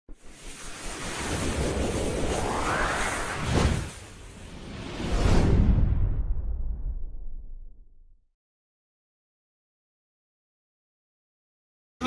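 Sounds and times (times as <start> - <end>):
whoosh of rushing noise: 0.2 - 7.2.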